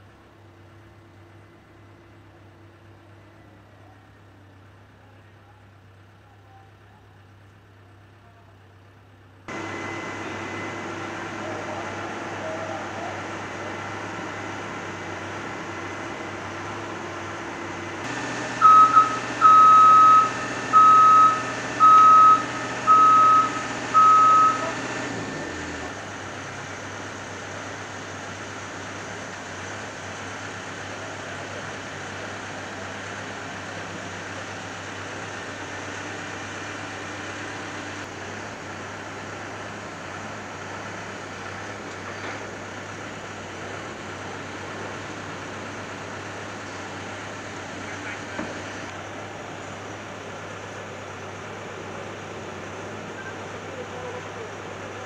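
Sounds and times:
construction machinery engine hum: 8.9 - 55.0
reversing alarm beeping: 9.5 - 12.6, 17.5 - 25.9.

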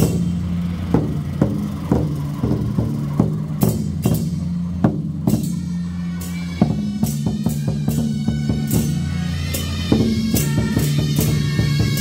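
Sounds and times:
barrel drum beaten with sticks: 0.0 - 12.0.

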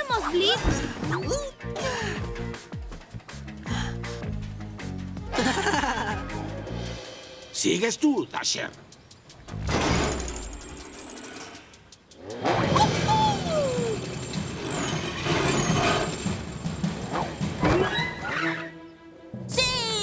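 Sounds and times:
cartoon background music: 0.0 - 8.6, 12.4 - 14.2, 17.1 - 20.0.

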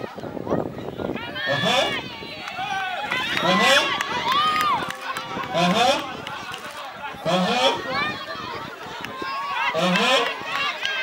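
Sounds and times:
voices shouting a count: 0.3 - 11.0.

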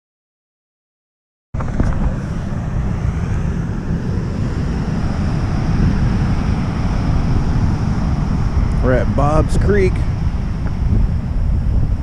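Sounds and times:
wind buffeting microphone: 1.6 - 12.0.

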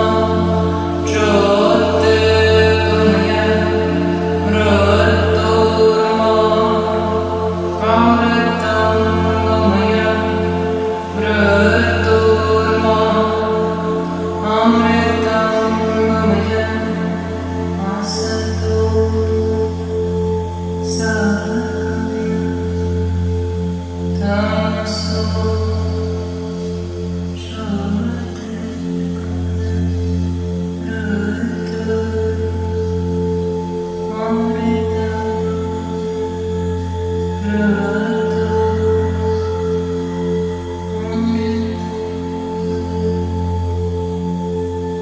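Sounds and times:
singing bowls ringing: 0.0 - 45.0
woman chanting: 0.0 - 45.0.

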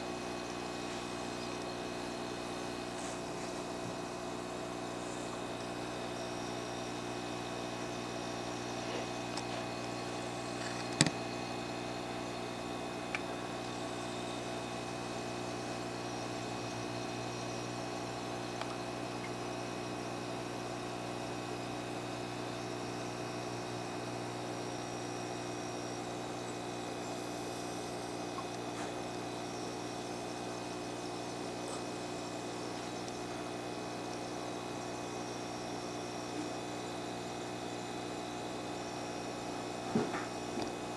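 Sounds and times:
machine hum: 0.0 - 40.9.

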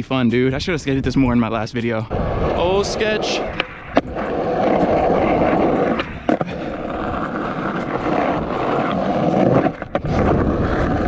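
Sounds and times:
skateboard wheels rolling on concrete: 1.8 - 11.0
skateboard clacks: 3.2 - 11.0.

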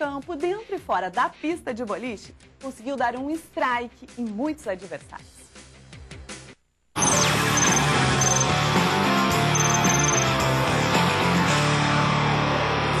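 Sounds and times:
tv theme music: 7.0 - 11.7.

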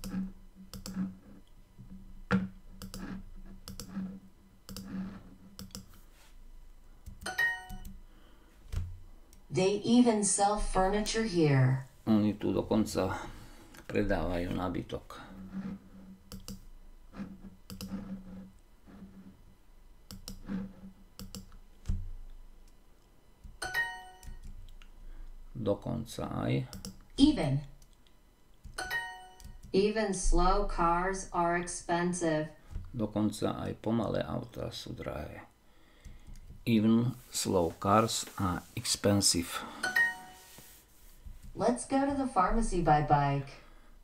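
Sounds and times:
bright multi-tone chime: 39.8 - 40.5.

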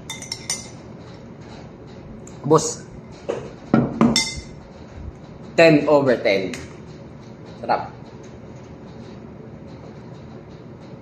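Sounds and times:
metal spoon clinking against bowl: 0.0 - 0.8, 4.1 - 4.5.

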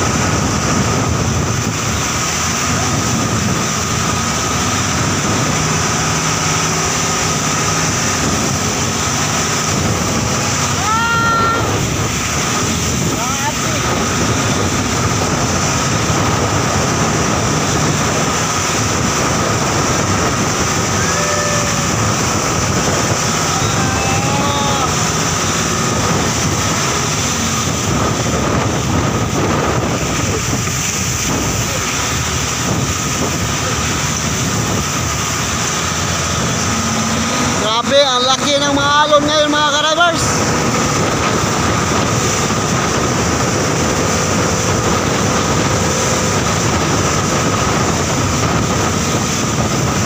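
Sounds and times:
boat engine running: 0.0 - 50.0
wind and sea noise: 0.0 - 50.0
faint voices: 20.8 - 26.2.

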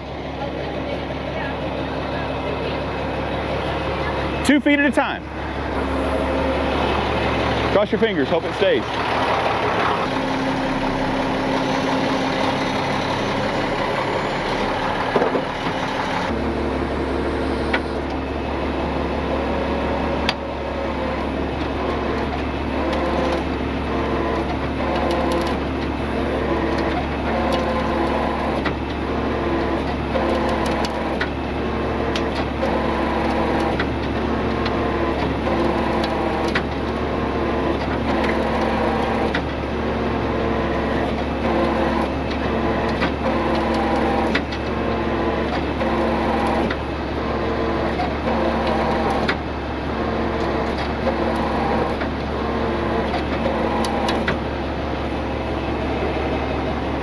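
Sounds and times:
tow truck engine running: 0.0 - 57.0.

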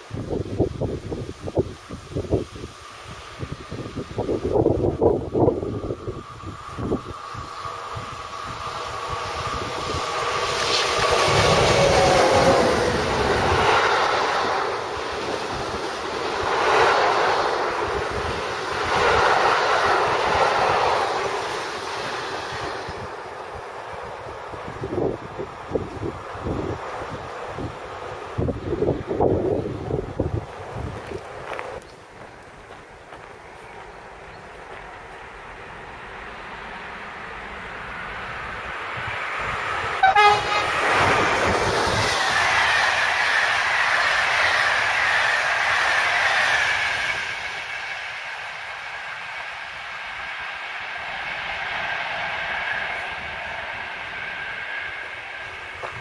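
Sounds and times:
electric locomotive passing: 0.0 - 56.0
train wagons rumbling and clattering: 0.0 - 56.0
wind gusts on microphone: 0.0 - 56.0.

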